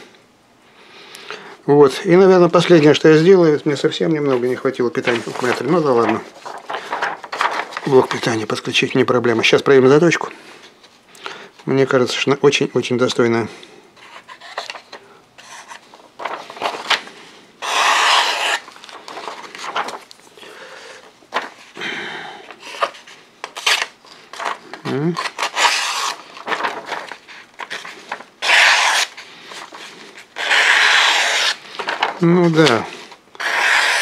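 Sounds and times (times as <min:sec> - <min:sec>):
paper crinkling: 0:04.2 - 0:08.6, 0:14.0 - 0:21.8, 0:22.4 - 0:33.2
knife blade slicing paper: 0:17.6 - 0:18.7, 0:25.2 - 0:29.2, 0:29.8 - 0:32.0, 0:33.4 - 0:34.0.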